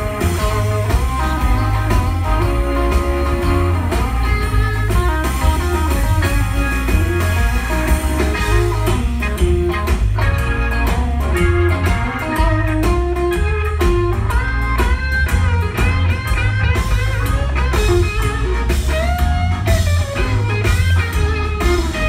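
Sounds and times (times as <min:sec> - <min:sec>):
bass: 0:00.0 - 0:22.0
drums: 0:00.0 - 0:22.0
electric guitar lead: 0:00.0 - 0:22.0.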